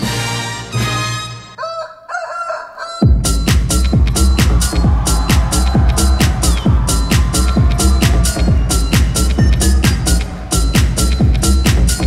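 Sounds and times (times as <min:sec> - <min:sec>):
rooster crowing: 0:01.5 - 0:03.1
dance music: 0:03.0 - 0:12.0.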